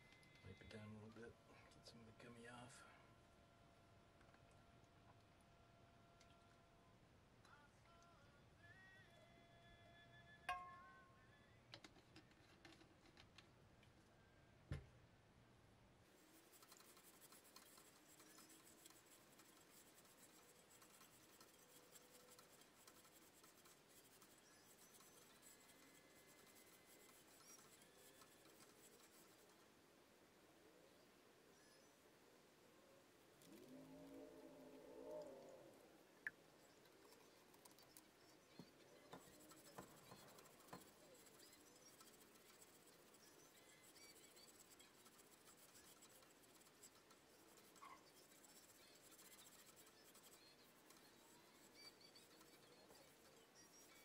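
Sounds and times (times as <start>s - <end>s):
cloth rubbing and scratching: 16.2s - 29.6s, 36.8s - 54.0s.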